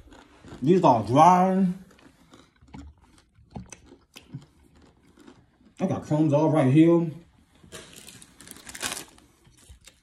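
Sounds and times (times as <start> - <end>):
chewing crunchy snack: 0.0 - 6.4, 7.7 - 10.0.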